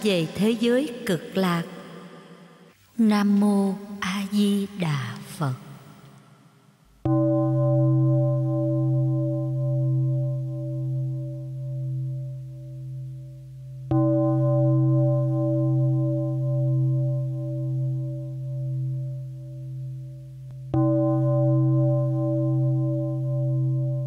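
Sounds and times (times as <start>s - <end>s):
deep temple bell ringing: 7.0s - 19.6s, 20.7s - 24.0s.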